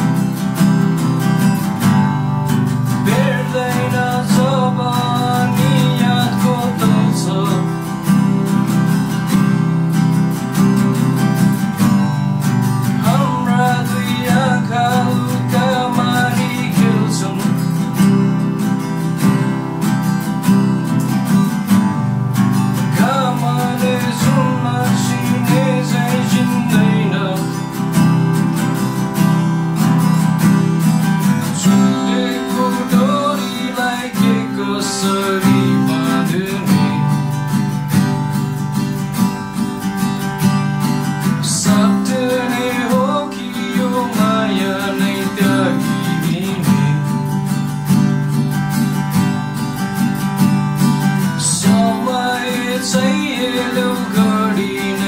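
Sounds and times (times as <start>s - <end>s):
acoustic guitars strumming: 0.0s - 55.0s
man singing: 2.9s - 8.8s, 12.9s - 18.2s, 22.8s - 28.0s, 31.4s - 37.6s, 41.2s - 47.7s, 51.2s - 55.0s.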